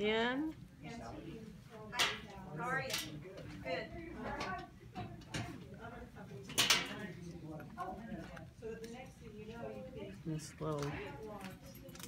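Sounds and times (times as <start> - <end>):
quiet indistinct talk: 0.4 - 12.0.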